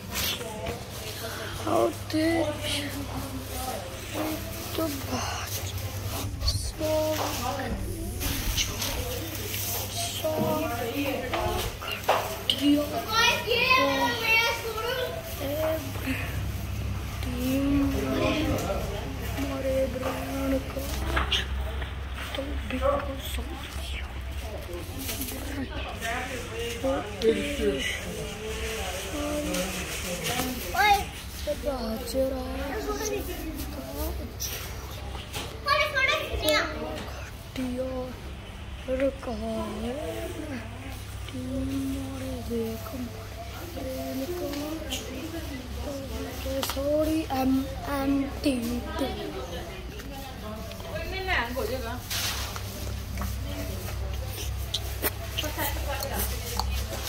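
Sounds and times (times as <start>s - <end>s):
children chattering and calling out: 0.0s - 57.0s
low background hum: 0.0s - 57.0s.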